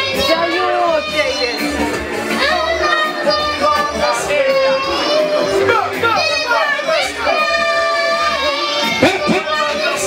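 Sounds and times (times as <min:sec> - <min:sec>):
boy singing through microphone: 0:02.4 - 0:10.0.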